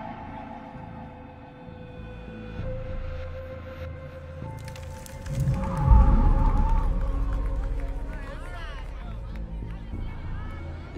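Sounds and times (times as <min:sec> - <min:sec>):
dramatic film score: 0:00.0 - 0:10.9
deep rumbling boom: 0:05.3 - 0:08.4.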